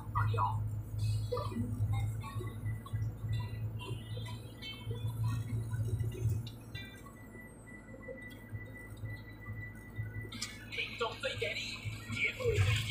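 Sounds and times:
engine and road noise in cabin: 0.0s - 12.9s
chiming tones from radio: 1.0s - 12.9s.

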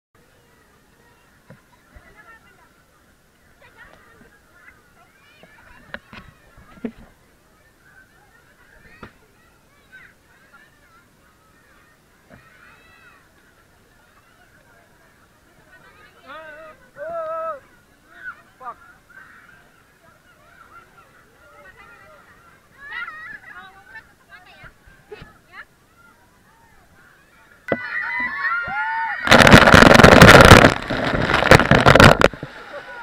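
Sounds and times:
children chattering and squealing: 0.2s - 31.2s
water splashes: 29.2s - 33.0s.

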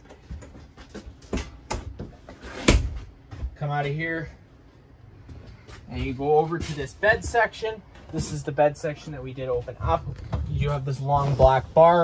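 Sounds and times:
footsteps in a trailer: 0.0s - 12.0s.

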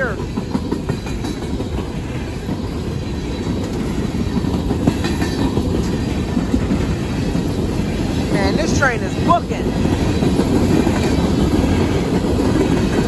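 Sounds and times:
clickety-clack rattle: 0.0s - 7.8s, 8.4s - 13.0s
train wheels rumbling on rail: 0.0s - 13.0s.

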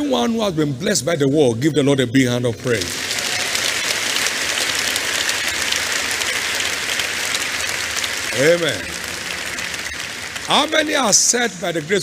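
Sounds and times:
congregation applauding: 2.8s - 12.0s.

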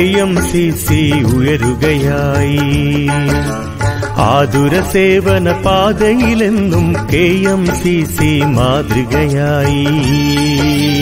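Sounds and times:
instrumental accompaniment: 0.0s - 11.0s
person singing: 0.0s - 11.0s.

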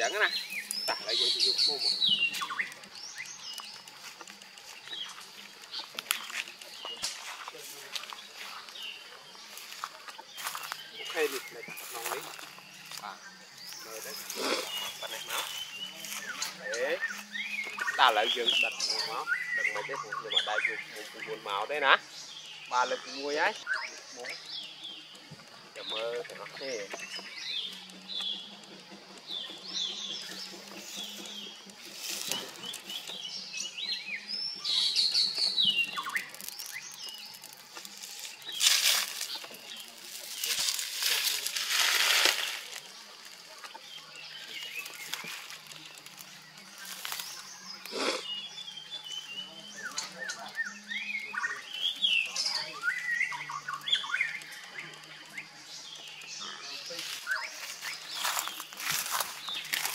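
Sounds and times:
birds chirping and singing: 0.0s - 59.9s
leaves and dry grass rustling: 0.0s - 59.9s.

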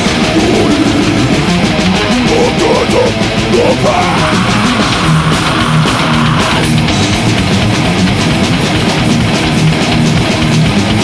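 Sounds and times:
distorted electric guitars: 0.0s - 11.0s
fast drumming: 0.0s - 11.0s.

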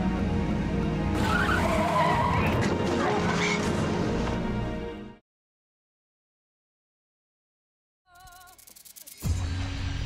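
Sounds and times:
background music: 0.0s - 5.2s
tyres squealing in a skid: 1.2s - 3.7s.

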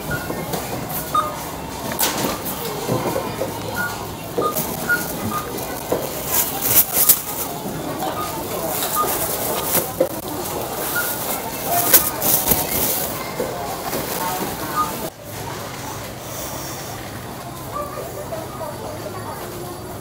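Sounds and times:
barcode scanner beeping: 0.0s - 10.1s, 10.8s - 13.1s
plastic bags rustling: 1.9s - 15.1s.

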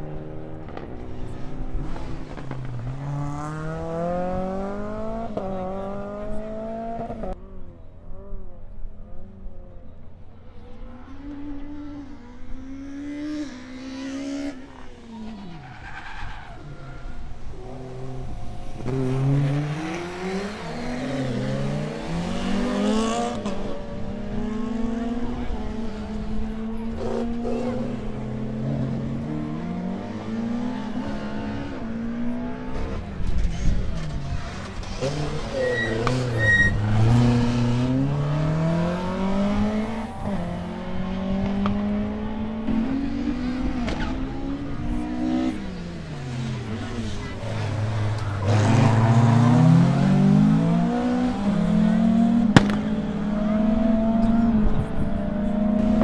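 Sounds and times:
rally car engine revving: 11.0s - 56.0s.

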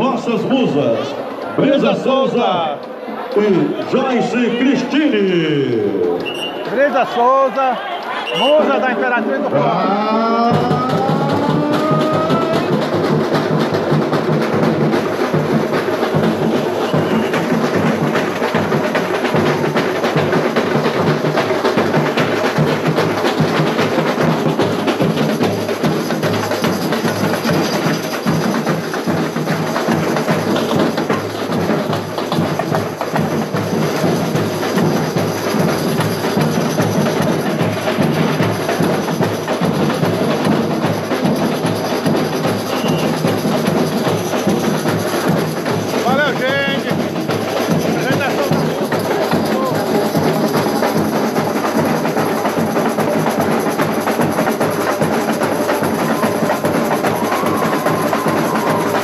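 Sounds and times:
samba drums and percussion: 0.0s - 59.0s.

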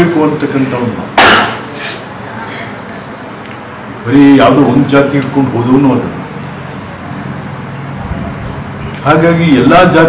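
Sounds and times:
steady hiss-like hum: 0.0s - 10.0s.

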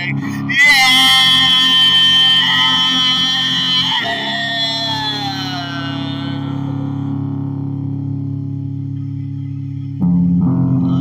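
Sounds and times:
electric guitar note: 0.0s - 11.0s
low drone: 0.0s - 11.0s.

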